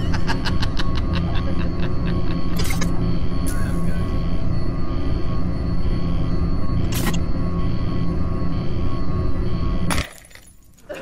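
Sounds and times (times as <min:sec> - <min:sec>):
low rumbling music: 0:00.0 - 0:10.7.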